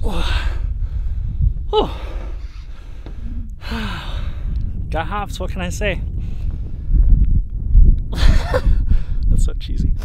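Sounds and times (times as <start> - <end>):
man breathing out hard: 0.0 - 4.8
man sighing: 1.7 - 4.4.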